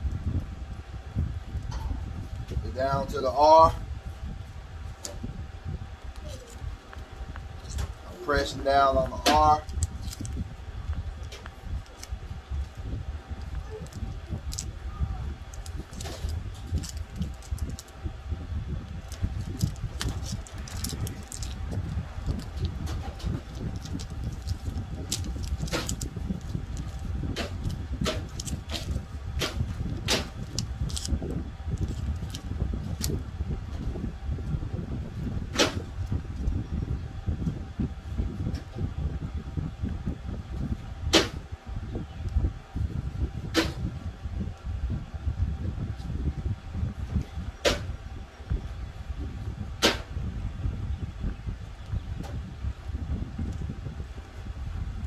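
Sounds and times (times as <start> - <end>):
low steady rumble: 0.0 - 55.0.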